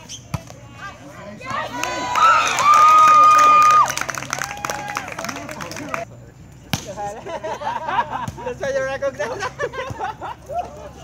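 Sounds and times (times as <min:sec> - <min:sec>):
crowd cheering and shouting: 0:01.2 - 0:05.4.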